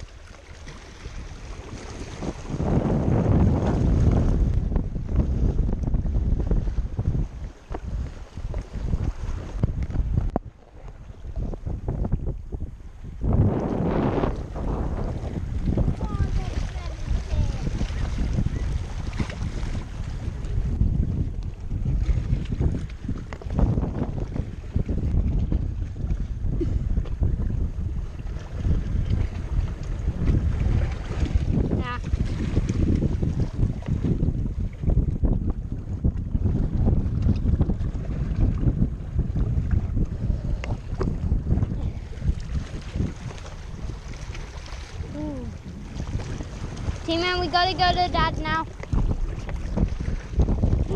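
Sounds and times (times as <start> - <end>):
small waves washing against rocks: 0.0 - 12.1, 13.2 - 20.8, 28.1 - 35.0, 35.9 - 50.9
wind buffeting microphone: 0.0 - 50.9.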